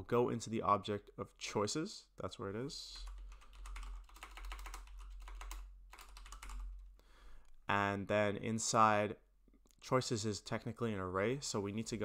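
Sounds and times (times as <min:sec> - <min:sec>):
typing on computer keyboard: 0:03.0 - 0:06.8.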